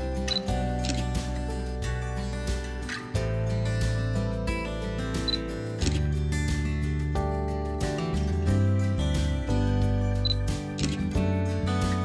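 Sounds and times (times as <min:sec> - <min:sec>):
soft acoustic guitar music: 0:00.0 - 0:12.0
camera shutter click: 0:10.8 - 0:11.0.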